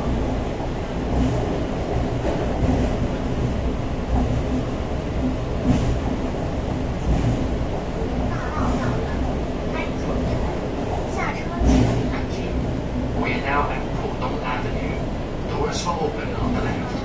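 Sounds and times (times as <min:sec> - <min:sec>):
train rumbling: 0:00.0 - 0:17.0.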